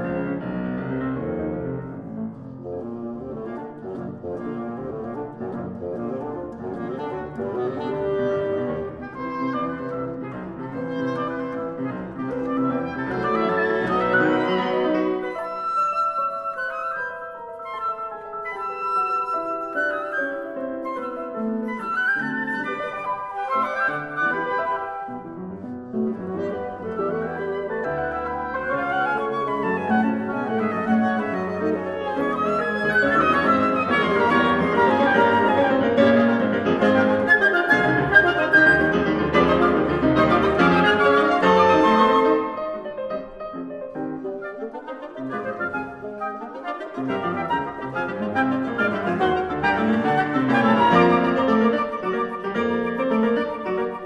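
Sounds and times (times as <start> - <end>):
piano and woodwind chamber music: 0.0 - 54.0.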